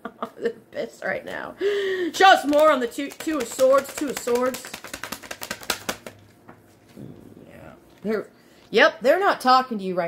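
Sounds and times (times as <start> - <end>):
cards being shuffled: 2.2 - 7.0.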